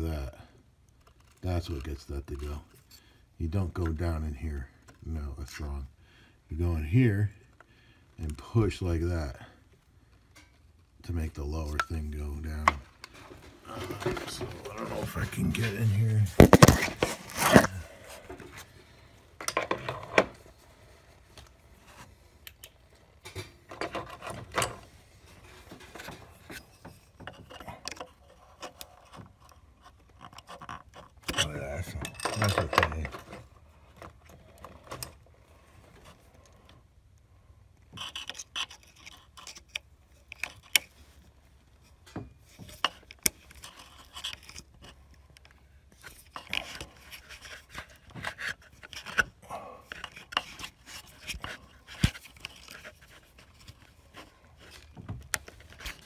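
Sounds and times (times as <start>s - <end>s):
small clicks and scraping: 0.8s - 5.6s, 9.6s - 11.0s, 11.6s - 56.0s.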